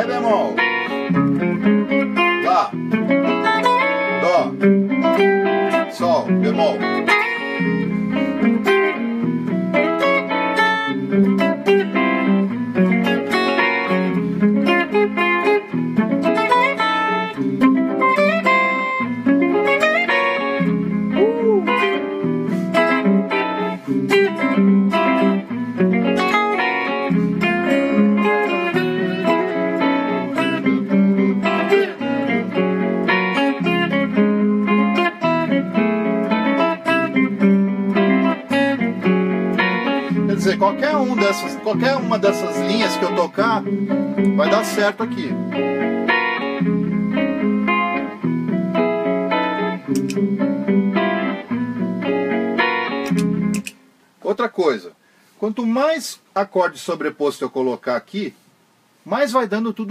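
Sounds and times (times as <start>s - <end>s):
sustained backing chords: 0.0s - 53.6s
electric guitar single-note lines: 0.0s - 53.8s.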